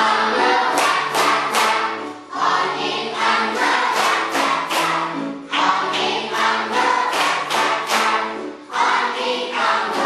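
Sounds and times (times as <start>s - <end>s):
children singing in unison: 0.0s - 10.0s
children clapping in time: 0.7s - 2.1s, 3.2s - 10.0s.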